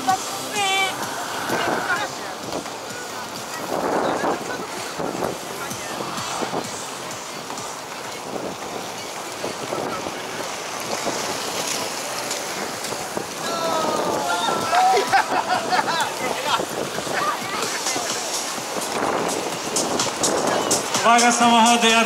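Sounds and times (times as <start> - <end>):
skate wheels rolling on asphalt: 0.0 - 21.1
wind on microphone: 0.0 - 21.4.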